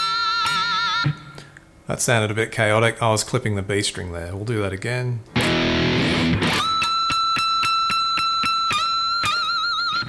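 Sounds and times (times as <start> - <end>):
electric guitar bent high note: 5.4 - 10.0.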